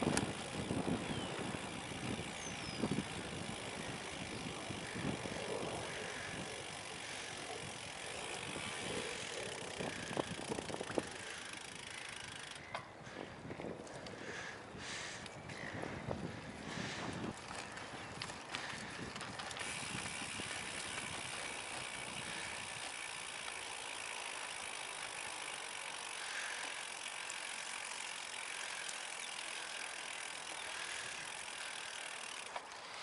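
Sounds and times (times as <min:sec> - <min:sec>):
bicycle freewheel ticking: 0:00.0 - 0:13.4, 0:14.1 - 0:33.0
tyres hissing on wet dirt: 0:17.6 - 0:33.0.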